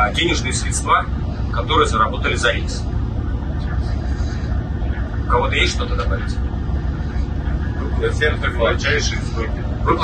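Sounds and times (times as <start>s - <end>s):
ship machinery rumble: 0.0s - 10.0s.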